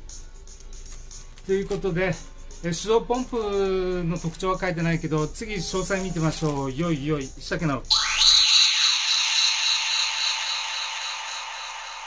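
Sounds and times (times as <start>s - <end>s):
high shimmering hiss: 7.9s - 12.0s
rising swish transition effect: 7.9s - 12.0s.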